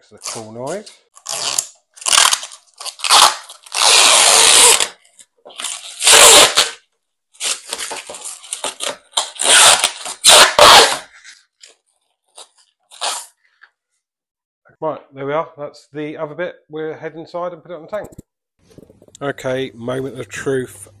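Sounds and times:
plastic film peeling crackle: 1.2 - 6.8.

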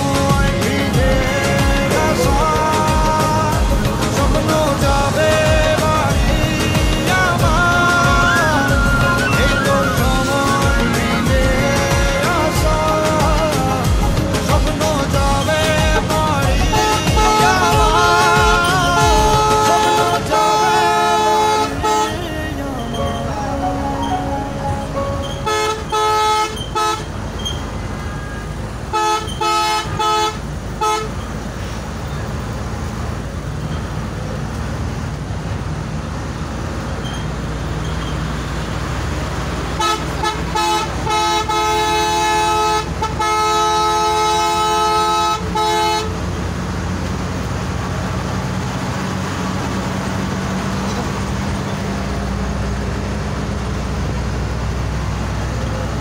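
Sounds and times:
bus engine and road noise: 0.0 - 56.0
bus horn toots: 7.0 - 31.6, 39.6 - 46.5.

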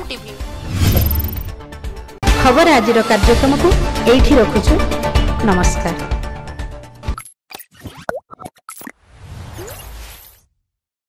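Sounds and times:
whoosh with low rumble: 0.6 - 1.6.

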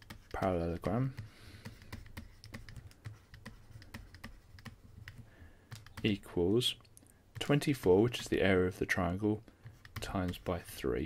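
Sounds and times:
pen tapping and scratching on tablet: 0.0 - 6.6, 7.3 - 10.8.

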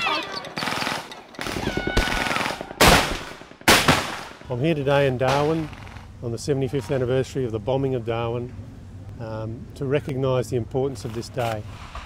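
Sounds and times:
field gun firing: 0.6 - 4.5.

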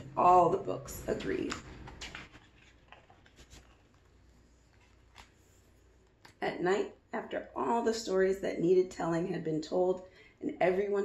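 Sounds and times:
paper rustling: 0.9 - 6.4
soft ticks of book handling: 1.3 - 6.4.

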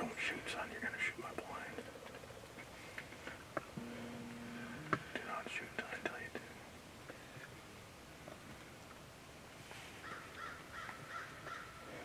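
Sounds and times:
person whispering: 0.0 - 1.9, 4.8 - 6.6
low steady hum: 0.0 - 9.6.

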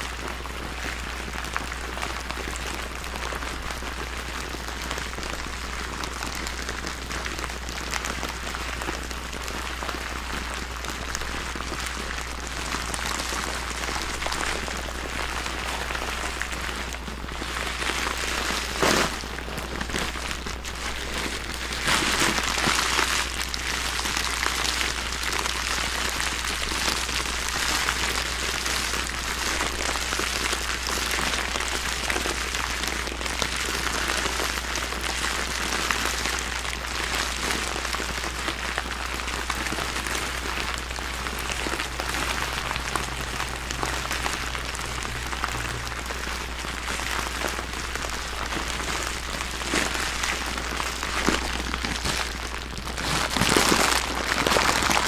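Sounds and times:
plastic bag crinkling and rattling: 0.0 - 55.0.

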